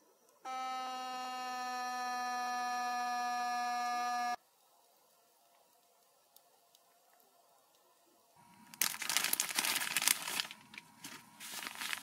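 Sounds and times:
buzzing horn-like tone: 0.5 - 4.4.

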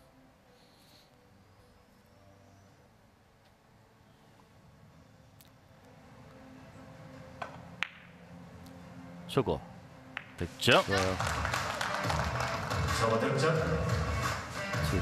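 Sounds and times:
faint low hum: 0.0 - 10.2
billiard balls knocking: 7.4 - 8.1, 10.2 - 10.4.

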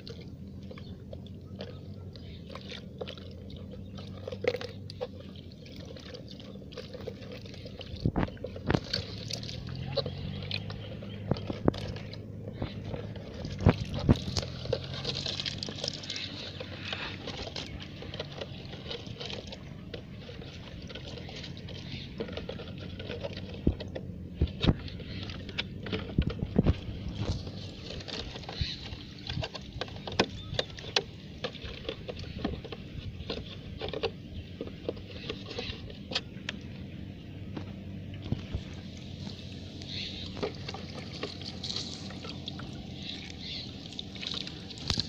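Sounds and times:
fish flapping and splashing: 0.0 - 36.4, 38.2 - 45.0.

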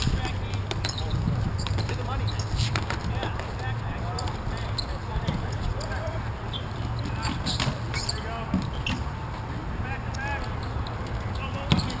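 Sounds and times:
hockey sticks clacking: 0.0 - 9.5.

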